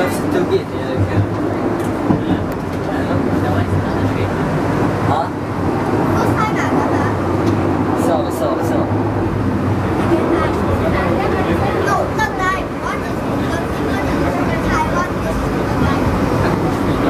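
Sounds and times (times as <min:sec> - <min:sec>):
cable railway car hum and rumble: 0:00.0 - 0:17.0
passengers chattering: 0:00.0 - 0:17.0.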